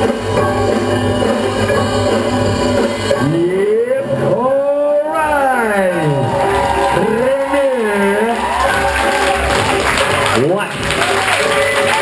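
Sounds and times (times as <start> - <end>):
low steady pulse: 0.0 - 5.0
held pitched tones: 0.0 - 9.0
pitched sound sliding upward: 1.2 - 8.8.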